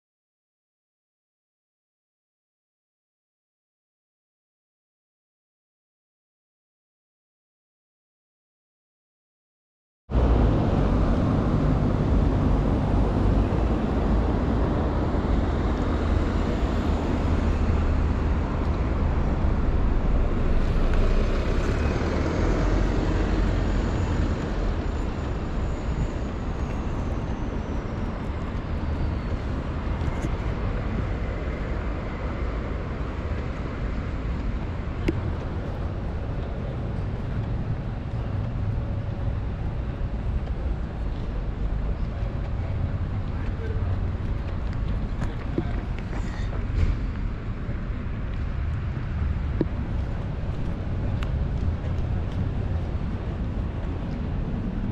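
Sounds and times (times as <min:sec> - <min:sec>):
road traffic rumble: 0:10.1 - 0:54.9.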